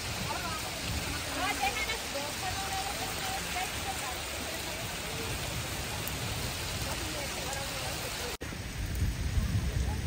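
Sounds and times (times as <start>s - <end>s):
heavy rain on lake surface: 0.0s - 10.0s.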